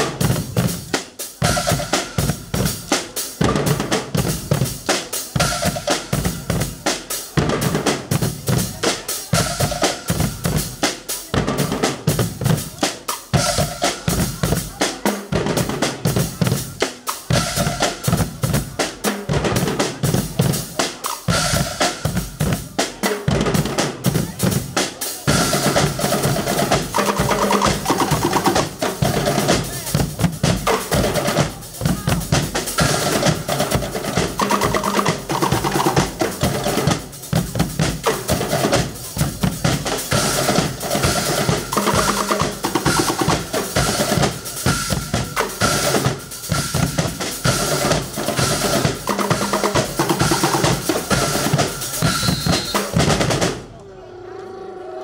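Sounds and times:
drums beating dense rhythm: 0.0 - 53.7.

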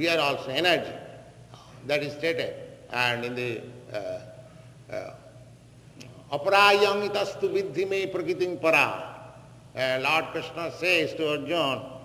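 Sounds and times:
man speaking: 0.0 - 5.4, 6.0 - 9.2, 9.8 - 12.0
recording hum and hiss: 0.0 - 12.0.

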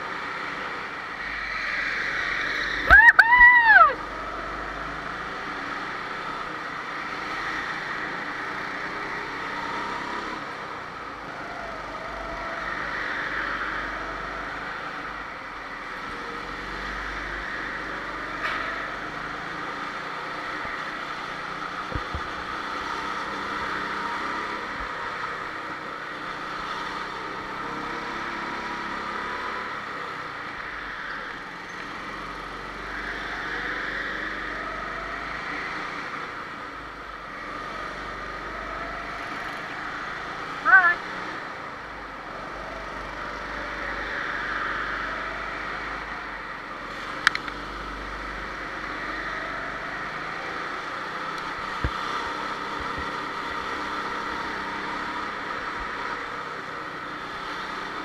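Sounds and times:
go-kart engines racing: 0.0 - 58.0.

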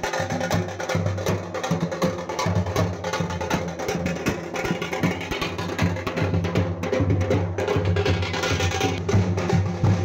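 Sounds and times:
drum beat: 0.0 - 10.0.

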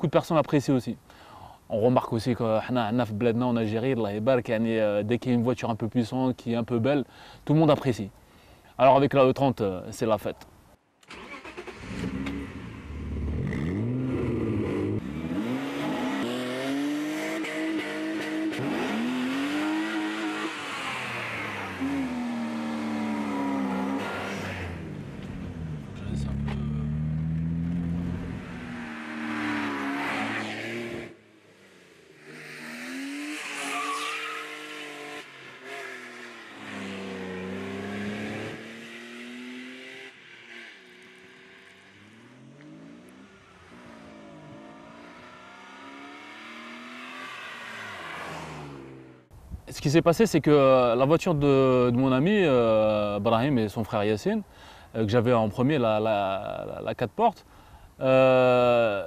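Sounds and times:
car engine revving: 11.1 - 49.3.

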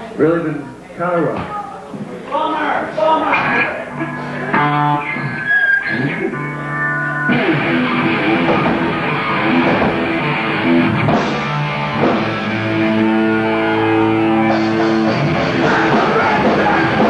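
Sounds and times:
distorted electric guitars: 3.3 - 17.0
drum kit: 7.3 - 17.0.

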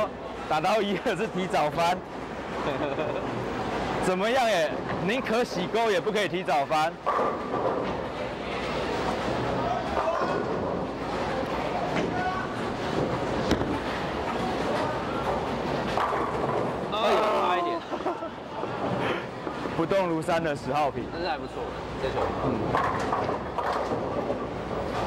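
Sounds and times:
alley background noise: 0.0 - 25.0
bowling ball rolling: 1.6 - 5.4, 6.9 - 20.7, 21.4 - 25.0.

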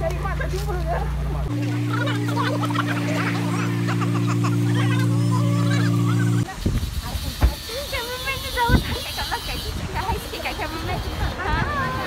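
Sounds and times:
loud low droning tone: 1.4 - 7.0.

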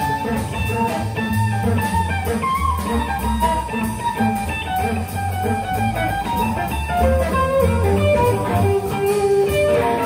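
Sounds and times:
double bass: 0.0 - 10.0
drum kit: 0.0 - 10.0
electric guitars: 0.0 - 10.0.

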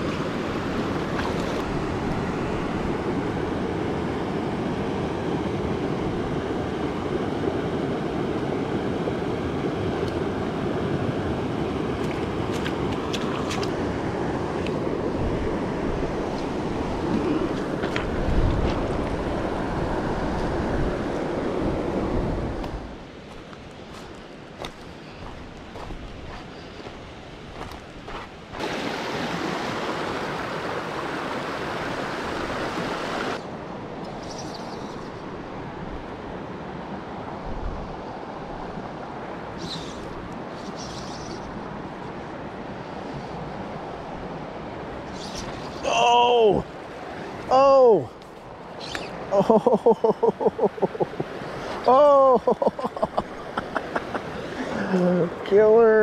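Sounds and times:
river water rushing: 0.0 - 34.4, 41.4 - 56.0
wind rumbling on microphone: 0.0 - 45.9.

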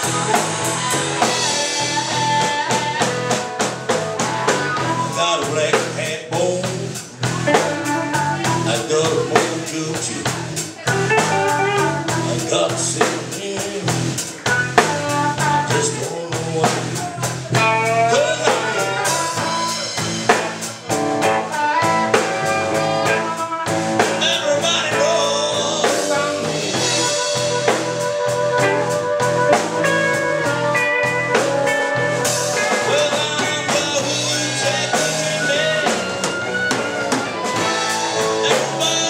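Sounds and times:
harmonica: 0.0 - 6.2, 17.6 - 39.0
drum kit beat: 0.0 - 39.0
electric bass: 0.0 - 39.0
electric guitar: 0.0 - 39.0.

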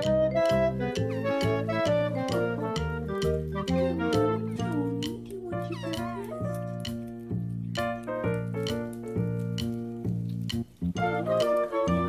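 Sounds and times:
background music with beat: 0.0 - 12.0.

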